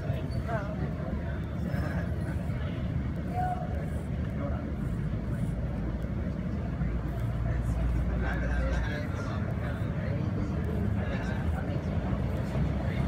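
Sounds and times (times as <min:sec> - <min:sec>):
faint indistinct voices: 0:00.0 - 0:13.0.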